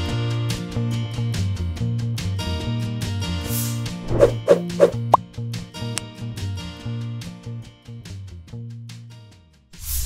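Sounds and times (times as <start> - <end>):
rising blip sound effect: 4.1 - 5.2.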